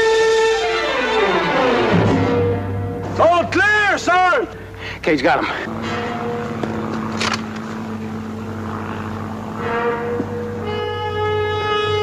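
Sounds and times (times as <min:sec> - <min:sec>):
orchestral music: 0:00.0 - 0:04.4, 0:05.7 - 0:12.0
engine drone: 0:00.0 - 0:12.0.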